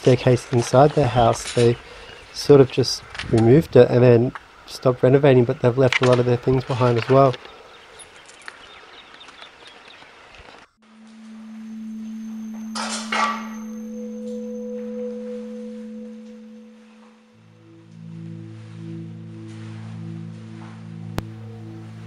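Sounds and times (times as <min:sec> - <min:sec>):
ambient drone music: 0:10.8 - 0:22.0.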